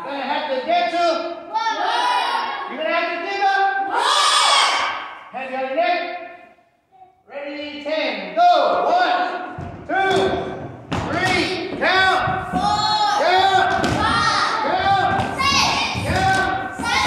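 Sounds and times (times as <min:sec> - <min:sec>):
children shouting in unison: 0:03.9 - 0:05.0
thuds of feet on wooden floor: 0:09.6 - 0:17.0.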